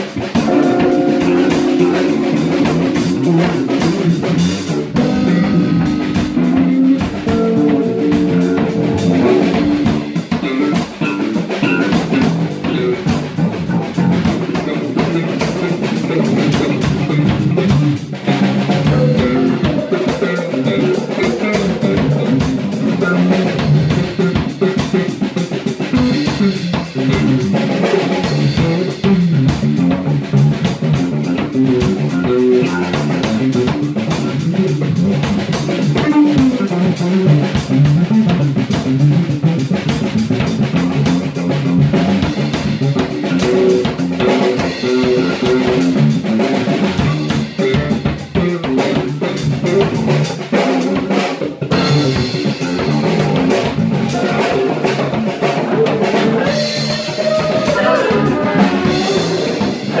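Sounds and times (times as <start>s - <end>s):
drum kit: 0.0s - 60.0s
electric bass guitar: 0.0s - 60.0s
electric guitar: 0.0s - 60.0s.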